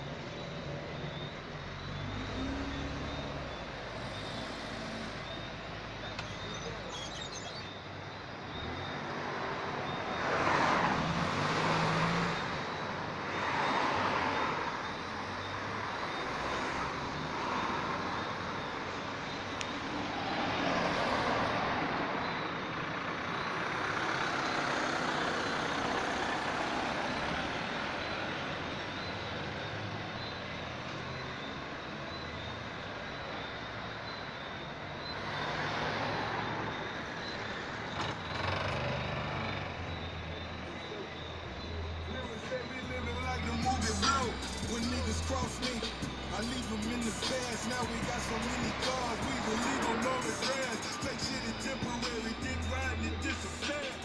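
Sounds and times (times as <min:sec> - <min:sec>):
vehicles passing: 0:00.0 - 0:54.0.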